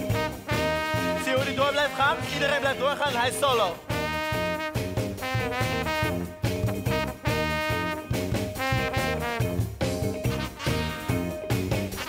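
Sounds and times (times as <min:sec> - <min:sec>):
brass band playing jazz: 0:00.0 - 0:12.0
drum kit beat: 0:00.0 - 0:12.0.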